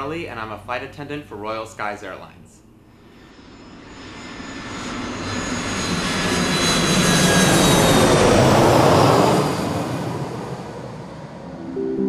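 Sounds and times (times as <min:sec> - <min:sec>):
jet airliner flying overhead: 0:02.9 - 0:12.0.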